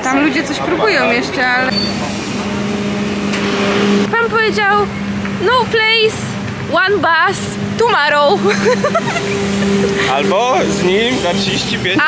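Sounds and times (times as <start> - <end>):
bus idling: 0.0 - 12.0
street traffic noise: 0.0 - 12.0.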